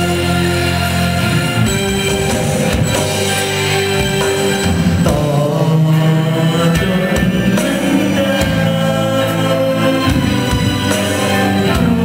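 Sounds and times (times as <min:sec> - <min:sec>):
band accompaniment: 0:00.0 - 0:12.0
man singing pop song: 0:05.0 - 0:12.0.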